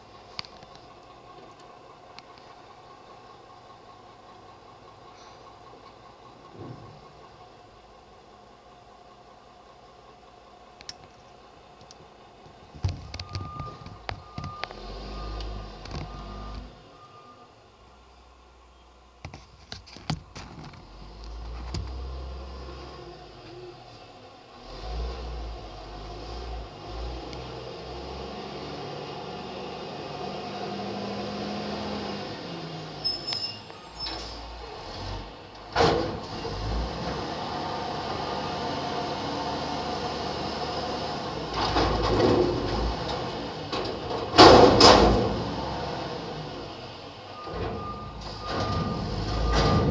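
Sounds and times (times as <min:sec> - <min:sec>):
truck engine rumbling: 0:00.0 - 0:49.9
faint high beep: 0:16.1 - 0:17.5, 0:33.1 - 0:34.2.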